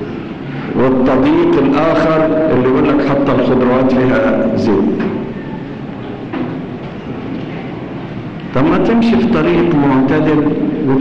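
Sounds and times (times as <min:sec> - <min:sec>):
recording hiss and low rumble: 0:00.0 - 0:11.0.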